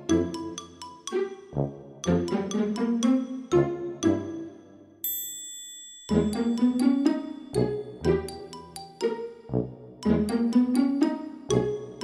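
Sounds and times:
bright chime ding: 5.0s - 7.6s
background music note: 6.1s - 12.0s.

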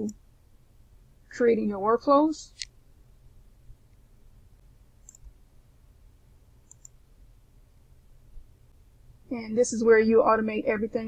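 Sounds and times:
low steady hum: 0.0s - 11.0s
computer mouse clicks: 5.0s - 5.3s, 6.6s - 7.0s.

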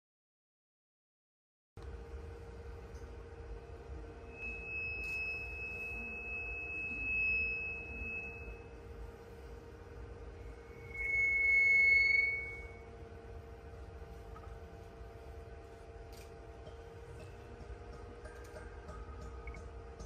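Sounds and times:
steady low hum: 1.8s - 20.0s
high ringing stone tones: 4.1s - 9.0s, 10.4s - 13.1s.

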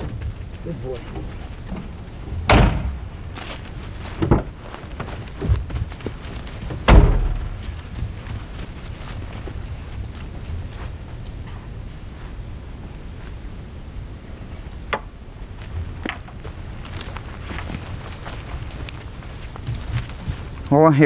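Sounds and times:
car door slamming: 2.4s - 3.1s, 6.8s - 7.6s.

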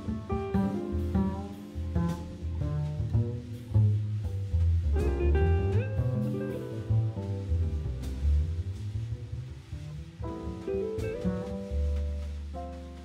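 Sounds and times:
drum kit: 0.0s - 13.0s
piano: 0.0s - 13.0s
upright double bass: 0.0s - 13.0s.

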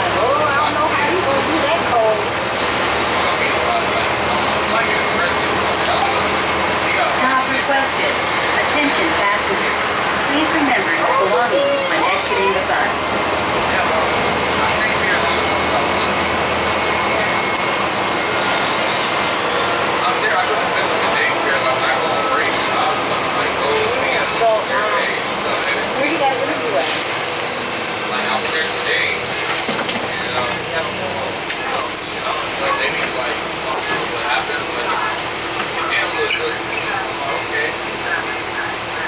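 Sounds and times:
people talking: 0.0s - 27.3s, 28.0s - 39.0s
bus engine rumble: 0.0s - 39.0s.

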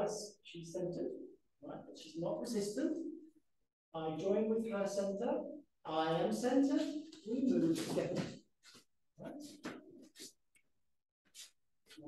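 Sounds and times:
man speaking: 0.0s - 3.1s, 4.0s - 8.4s.

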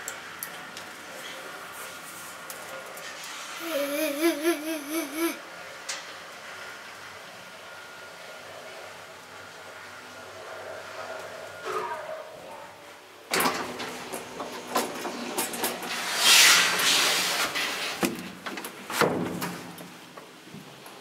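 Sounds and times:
folding door sliding open: 13.3s - 17.8s.

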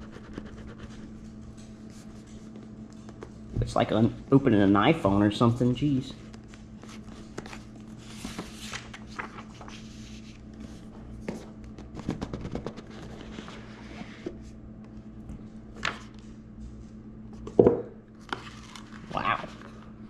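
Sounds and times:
cardboard rustling: 6.8s - 14.4s.

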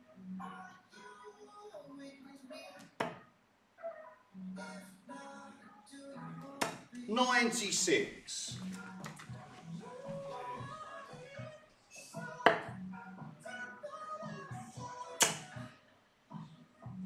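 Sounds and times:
darts hitting a dartboard: 2.9s - 3.2s, 6.6s - 6.9s, 12.4s - 12.7s, 15.2s - 15.6s.

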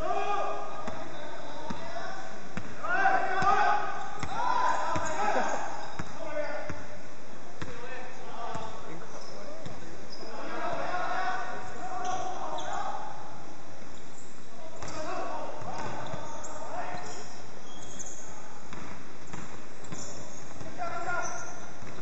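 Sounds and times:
players calling out: 0.0s - 6.9s, 7.6s - 13.4s, 14.5s - 21.9s
basketball bouncing on wooden floor: 5.9s - 6.1s, 18.7s - 20.7s.

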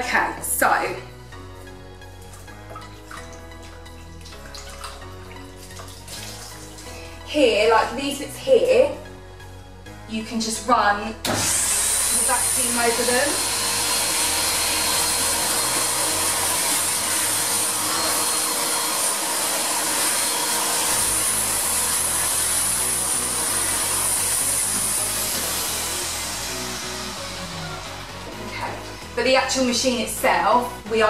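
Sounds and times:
vacuum cleaner running: 10.2s - 31.0s.

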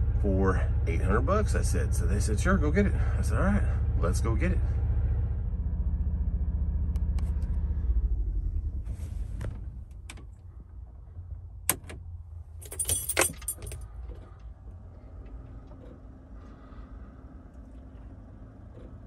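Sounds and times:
faint steady hum: 7.9s - 19.0s
keys jangling: 12.6s - 13.9s.

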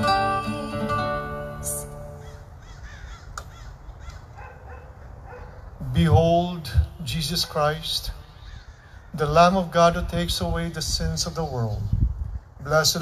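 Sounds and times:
man speaking: 5.8s - 8.3s, 12.6s - 13.0s.

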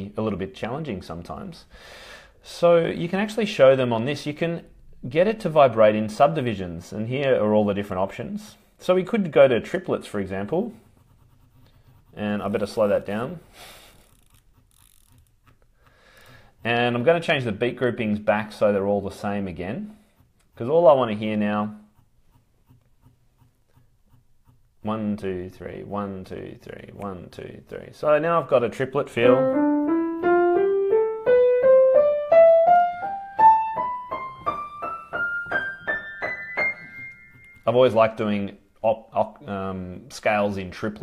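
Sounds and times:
ascending piano scale: 29.2s - 38.2s.

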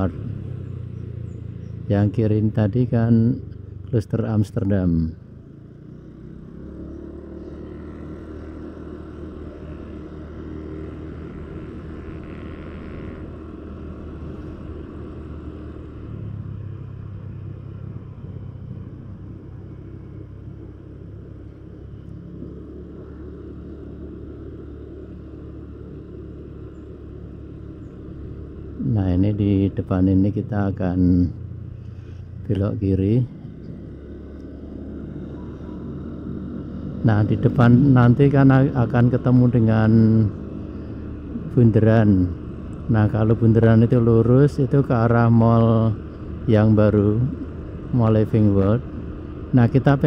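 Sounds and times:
vehicle engine and tyres hum: 0.0s - 50.0s.

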